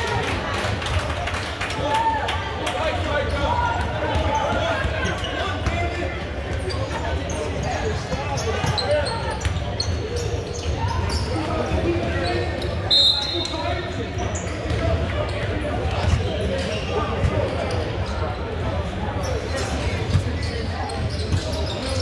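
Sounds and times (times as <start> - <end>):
voices in echoing hall: 0.0 - 22.0
referee's whistle blast: 12.8 - 13.5.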